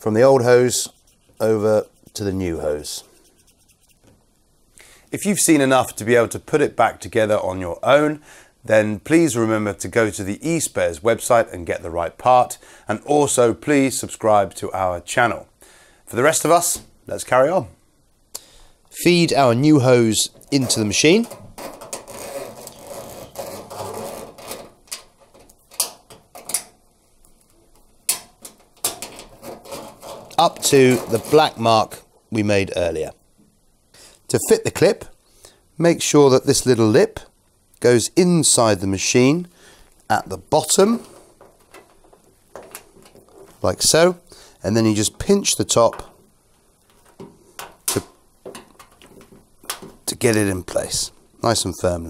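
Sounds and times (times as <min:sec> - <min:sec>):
plastic hose rubbing against edge: 0:00.6 - 0:04.1, 0:20.2 - 0:26.7, 0:28.4 - 0:32.0.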